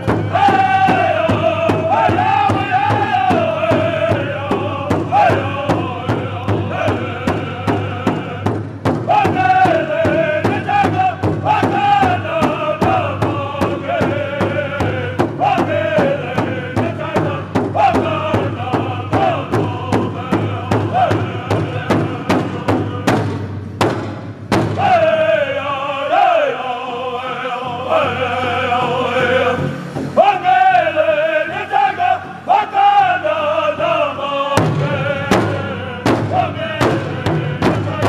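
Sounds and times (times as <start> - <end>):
men singing in unison: 0.0 - 23.3, 24.7 - 38.0
bass drum steady beat: 0.0 - 25.0.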